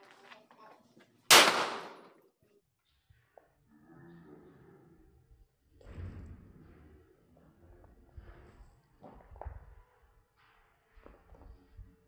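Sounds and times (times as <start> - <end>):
pistol shot echoing: 1.3 - 2.1.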